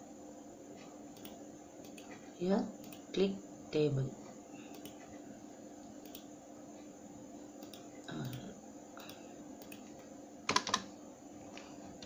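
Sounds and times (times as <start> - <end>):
computer clicking: 1.1 - 2.2, 2.8 - 3.1, 4.7 - 5.2, 6.0 - 6.3, 7.6 - 8.4, 9.0 - 10.9.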